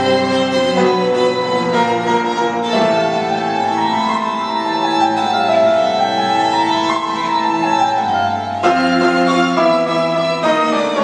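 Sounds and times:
cello: 0:00.0 - 0:11.0
piano chord: 0:00.0 - 0:11.0
violin: 0:00.0 - 0:11.0.

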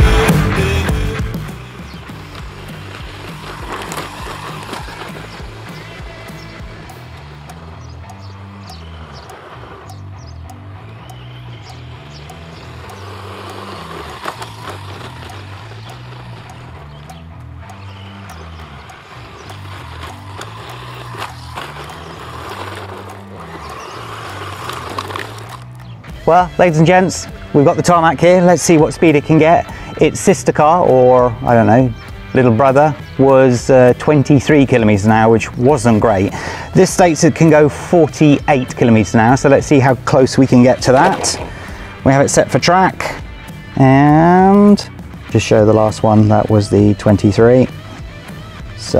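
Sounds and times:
background music with bass line: 0:00.0 - 0:48.9
loud rock music: 0:00.0 - 0:48.9
rc truck motor: 0:00.0 - 0:48.9
tyres crunching on gravel: 0:00.0 - 0:48.9.

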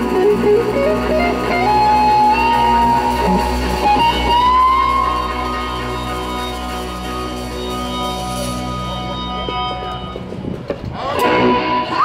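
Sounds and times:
electric guitar sustained note: 0:00.0 - 0:10.6
rock band playing: 0:00.0 - 0:12.0.

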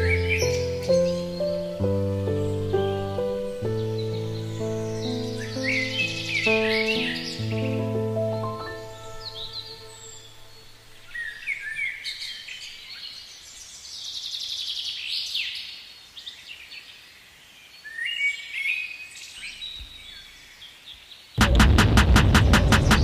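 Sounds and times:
birds chirping and trilling: 0:00.0 - 0:21.4
loud music with fast pulse: 0:21.4 - 0:23.0.

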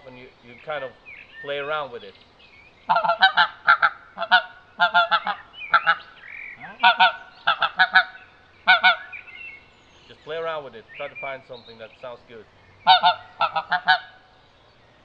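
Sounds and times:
goose call honks: 0:02.9 - 0:06.0, 0:06.6 - 0:09.2, 0:12.8 - 0:14.3.

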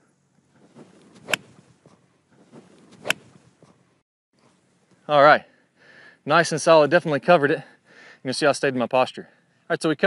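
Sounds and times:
golf club striking ball: 0:00.6 - 0:03.8.

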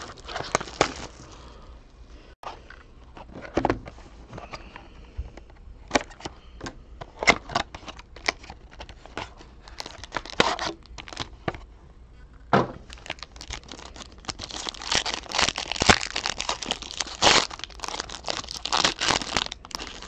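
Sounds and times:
foil wrapper crinkling and tearing: 0:00.0 - 0:01.3, 0:07.3 - 0:11.3, 0:12.9 - 0:20.0.

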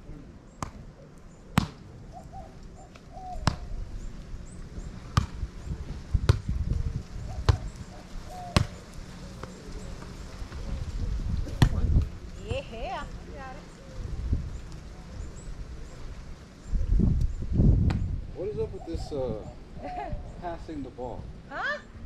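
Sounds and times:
hands smacking volleyball: 0:01.6 - 0:01.8, 0:03.4 - 0:03.7.

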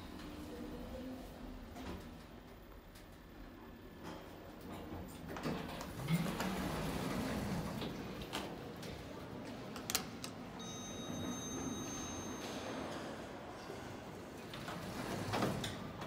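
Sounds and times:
elevator doors rumbling open: 0:14.4 - 0:16.0.

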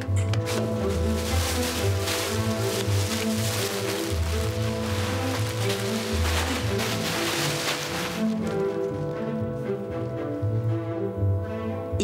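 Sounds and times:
plastic bags rustling: 0:00.2 - 0:09.3.

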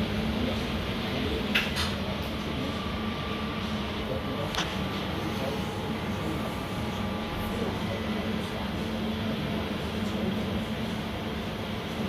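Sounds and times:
low hum of machinery: 0:00.0 - 0:12.0.

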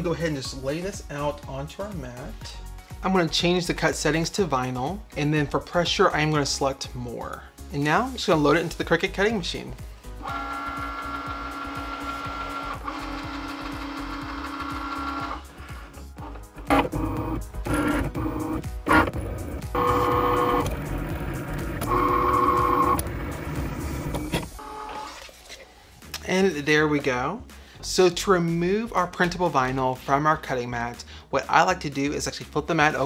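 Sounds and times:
cutting machine motor whirring: 0:10.2 - 0:25.2.

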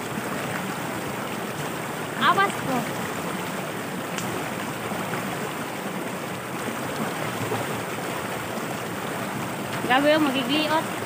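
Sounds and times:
creek running over rocks: 0:00.0 - 0:11.0.

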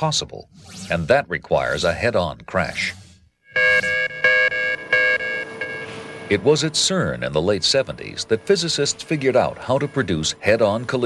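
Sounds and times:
electronic alarm pulsing: 0:03.4 - 0:06.6.

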